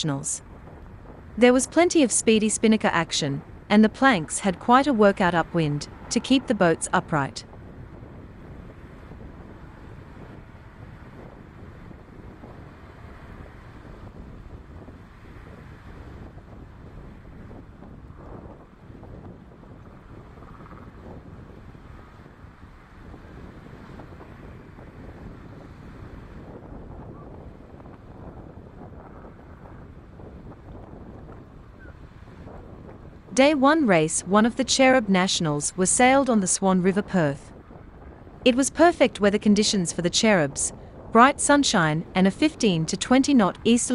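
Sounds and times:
wind buffeting microphone: 0.0 - 43.9.

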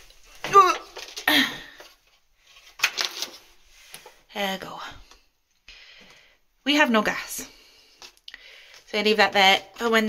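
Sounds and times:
card rustling: 0.0 - 4.2.

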